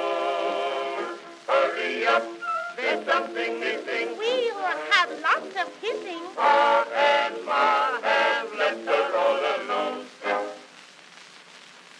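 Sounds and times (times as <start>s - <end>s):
cylinder surface hiss: 0.0s - 11.9s
thin old song recording: 0.0s - 11.9s.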